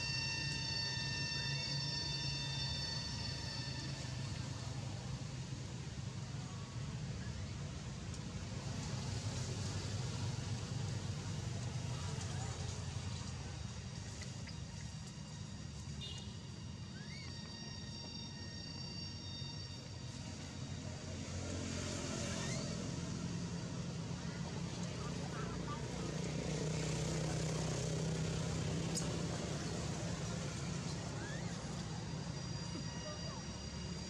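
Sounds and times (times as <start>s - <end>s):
high insect tones: 0.0s - 5.0s, 13.4s - 24.0s, 26.4s - 34.0s
vehicle motor hum: 19.8s - 34.0s.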